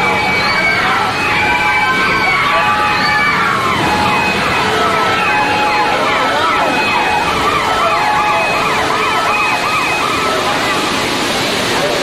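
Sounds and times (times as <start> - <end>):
flood water pouring down stairs: 0.0 - 12.0
wailing sirens sweeping downward: 0.0 - 12.0.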